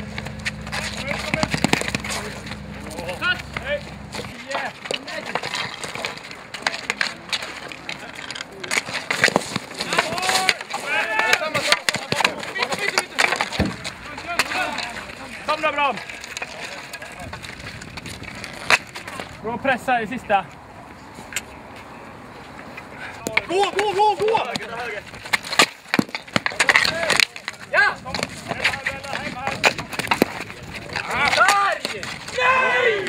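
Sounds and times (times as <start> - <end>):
players shouting: 0.0 - 16.0, 23.0 - 25.1, 26.4 - 33.0
hockey sticks clacking on ball: 0.0 - 19.4, 22.7 - 33.0.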